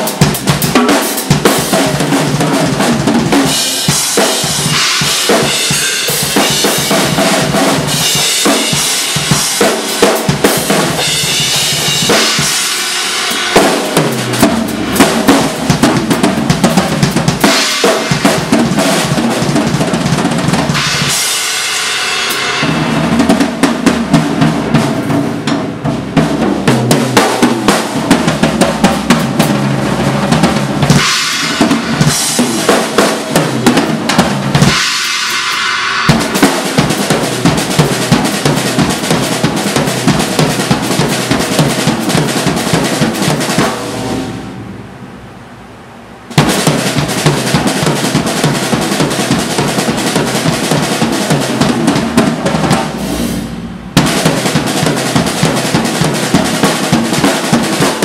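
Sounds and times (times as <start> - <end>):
fast drum kit solo: 0.0 - 44.5, 46.3 - 58.0.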